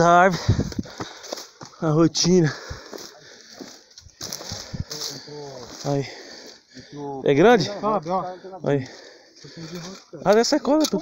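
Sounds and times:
footsteps rustling through brush: 0.0s - 6.7s.

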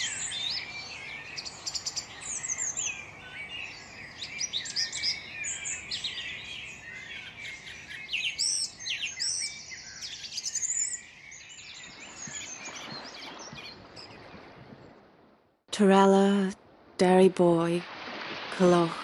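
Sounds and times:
songbirds chorus: 0.0s - 14.6s.

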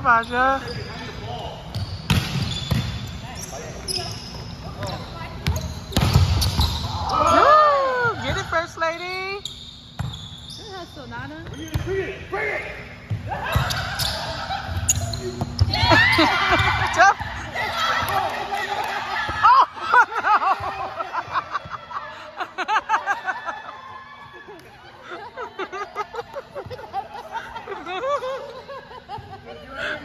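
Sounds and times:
players shouting: 12.4s - 20.0s.

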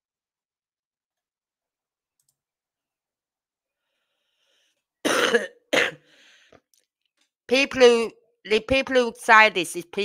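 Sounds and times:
person clearing throat: 5.1s - 6.0s.

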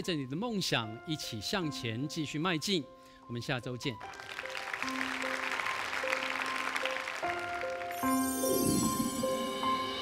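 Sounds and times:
soft background music: 0.0s - 10.0s
studio applause: 4.0s - 8.4s.

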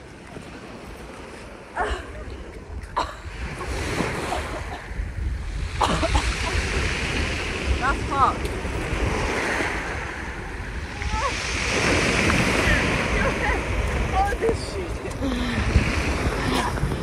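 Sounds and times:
wind buffeting microphone: 0.0s - 17.0s
surf breaking on pebbles: 11.3s - 15.2s.

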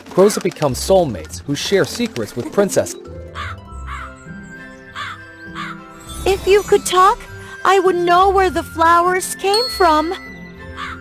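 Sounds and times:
soft background music: 0.0s - 11.0s
crow cawing: 3.3s - 5.9s, 10.7s - 11.0s.

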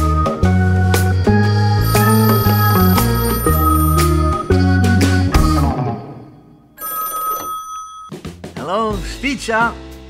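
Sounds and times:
music: 0.0s - 6.8s, 8.1s - 10.0s
telephone ringing: 1.8s - 5.0s, 6.8s - 8.2s.

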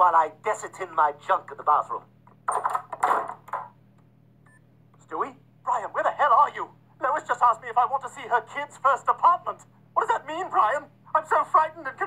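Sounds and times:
interior door opening and shutting: 2.4s - 3.8s.

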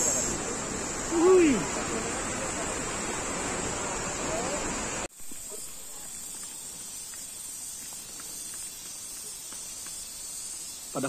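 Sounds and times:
steady high-pitched hiss: 0.0s - 11.0s.

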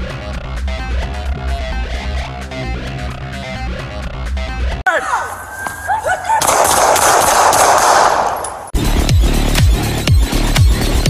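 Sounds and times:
rapid automatic gunfire: 6.4s - 8.3s
heavy electronic music: 8.8s - 11.0s.

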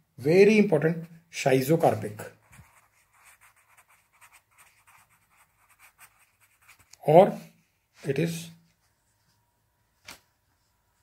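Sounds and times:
pencil scratching on paper: 2.4s - 7.0s.

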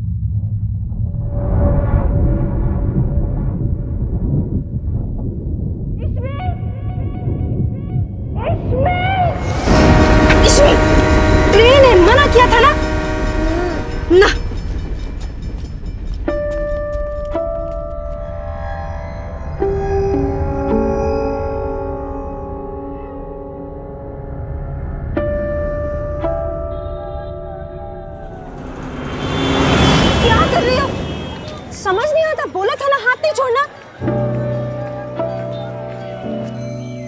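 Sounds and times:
steady low rumble: 0.0s - 18.7s
rushing noise: 9.2s - 16.2s, 28.2s - 32.8s
gong-like struck tones: 9.4s - 31.8s
held musical note: 9.4s - 32.6s
loud rising pitched sound: 28.0s - 32.0s.

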